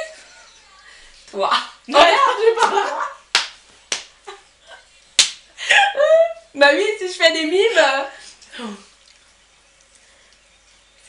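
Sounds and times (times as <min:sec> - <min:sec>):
hand slaps: 0:03.3 - 0:04.1, 0:05.2 - 0:05.4.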